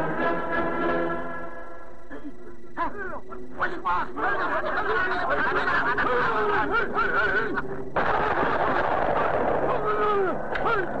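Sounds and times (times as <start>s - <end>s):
cartoon voices snickering and laughing: 4.1s - 7.8s.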